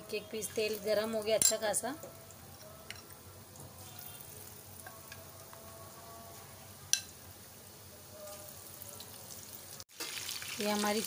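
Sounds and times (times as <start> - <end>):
chicken deep-frying in oil: 3.5 - 11.0.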